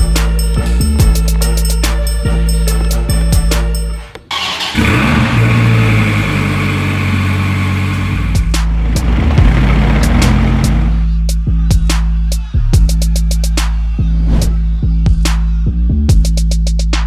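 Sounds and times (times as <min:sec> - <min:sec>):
music with a beat: 0:00.0 - 0:04.3, 0:08.2 - 0:17.0
car engine starting and idling: 0:03.5 - 0:11.2.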